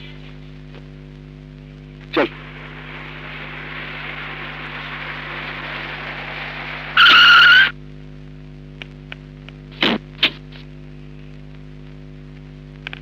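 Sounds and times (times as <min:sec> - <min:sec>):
car road noise: 0:02.2 - 0:07.7
tyres screeching: 0:02.2 - 0:07.8.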